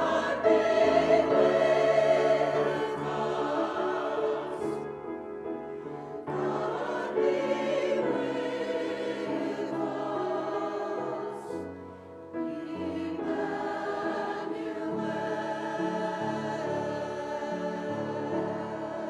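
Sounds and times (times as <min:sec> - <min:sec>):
mixed choir singing a hymn: 0:00.0 - 0:19.0.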